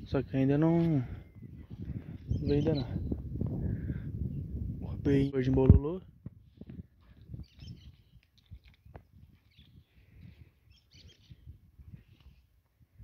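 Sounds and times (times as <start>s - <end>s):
faint bird chirps: 7.3s - 8.2s, 9.4s - 11.5s.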